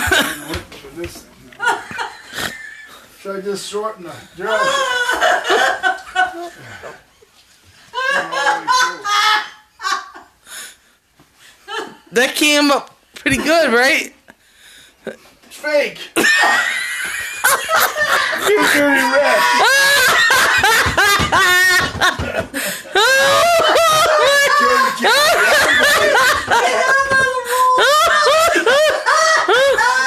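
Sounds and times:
person laughing high-pitched: 0:16.2 - 0:22.4, 0:23.0 - 0:30.0
high-pitched shriek of laughter: 0:23.0 - 0:25.5.

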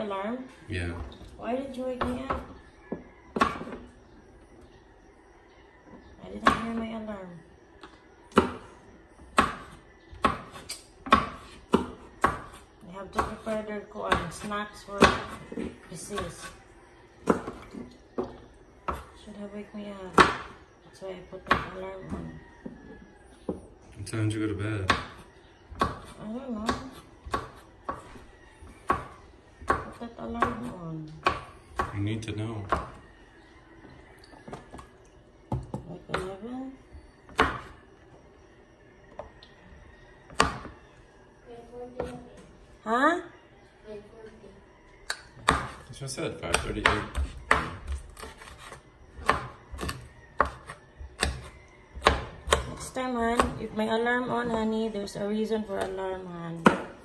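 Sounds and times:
knife chopping on wooden board: 0:02.0 - 0:03.8, 0:09.3 - 0:12.6, 0:13.2 - 0:16.5, 0:17.2 - 0:19.1, 0:24.8 - 0:28.1, 0:28.8 - 0:32.0, 0:37.3 - 0:37.8, 0:40.3 - 0:40.8, 0:45.3 - 0:54.7, 0:56.6 - 0:57.0.

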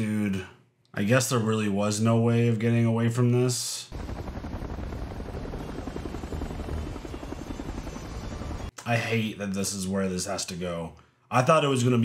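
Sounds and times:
helicopter rotor blades beating: 0:03.9 - 0:08.7.

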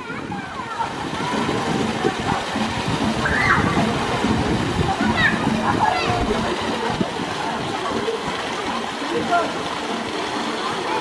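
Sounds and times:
faint voices: 0:00.0 - 0:11.0
fountain water pouring into pool: 0:00.0 - 0:11.0.

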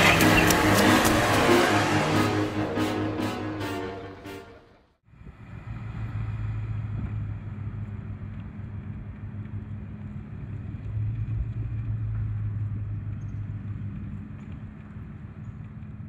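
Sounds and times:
car engine hum: 0:00.0 - 0:03.7, 0:05.2 - 0:16.0.

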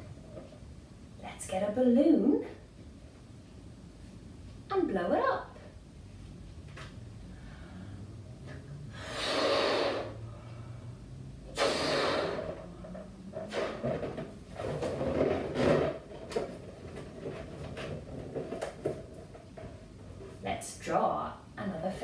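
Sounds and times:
person blowing up a balloon: 0:08.9 - 0:10.3, 0:11.5 - 0:12.7.

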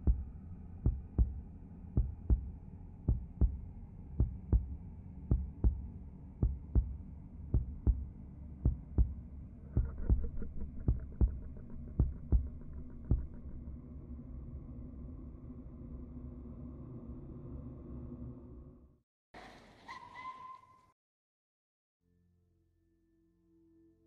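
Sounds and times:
low hum: 0:00.0 - 0:19.0
heartbeat double thump: 0:00.1 - 0:00.3, 0:00.9 - 0:01.4, 0:02.0 - 0:02.5, 0:03.1 - 0:03.6, 0:04.2 - 0:07.0, 0:07.6 - 0:08.1, 0:08.7 - 0:13.6.

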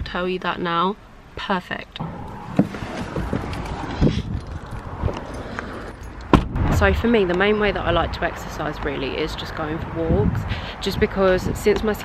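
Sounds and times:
car keys jingling: 0:02.7 - 0:06.4.

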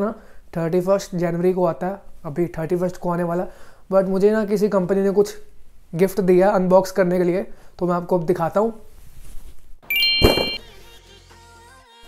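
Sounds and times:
bright ding: 0:09.9 - 0:10.6
faint ringing tone: 0:09.9 - 0:10.6
sharp clang-like hit: 0:09.9 - 0:10.6.

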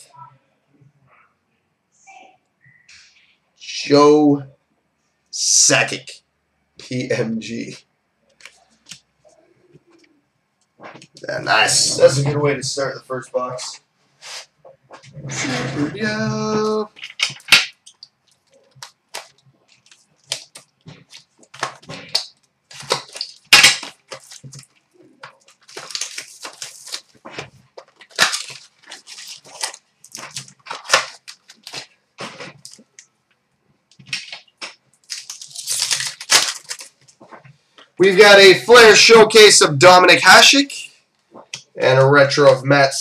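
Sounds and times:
cards being handled: 0:16.3 - 0:33.0, 0:34.0 - 0:37.4
foil wrappers crinkling: 0:16.3 - 0:33.0, 0:33.9 - 0:37.5
card packs tearing open: 0:18.7 - 0:32.8, 0:34.1 - 0:37.2.

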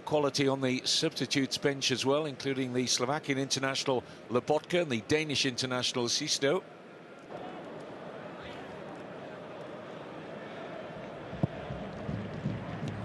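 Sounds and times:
stadium crowd murmur: 0:00.0 - 0:13.0.

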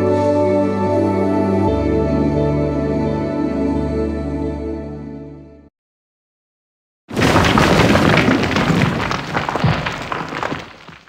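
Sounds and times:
boom with crackling rumble: 0:07.1 - 0:11.0.

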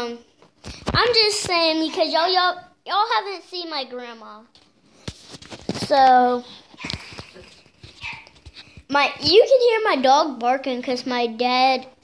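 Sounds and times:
dog barking and crying: 0:01.8 - 0:02.2, 0:06.8 - 0:07.1, 0:08.0 - 0:08.4.

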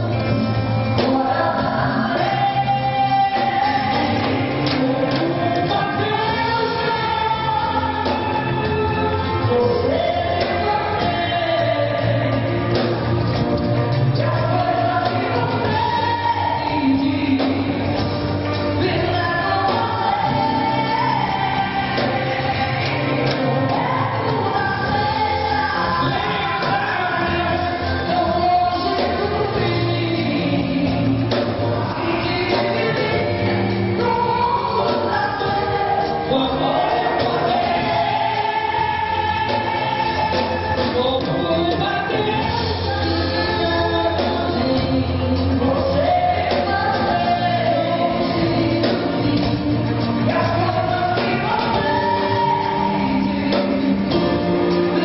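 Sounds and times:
live band playing: 0:00.0 - 0:55.0
woman singing into microphone: 0:00.0 - 0:55.0.

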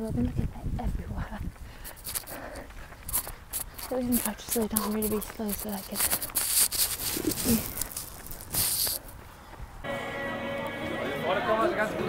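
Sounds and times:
wind on microphone: 0:00.0 - 0:09.9.

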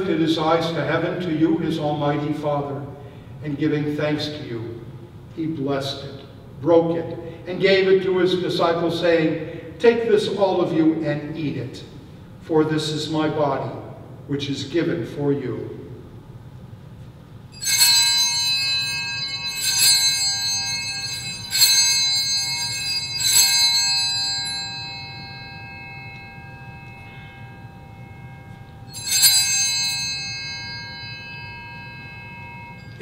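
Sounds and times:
altar bell ringing: 0:17.4 - 0:33.0.

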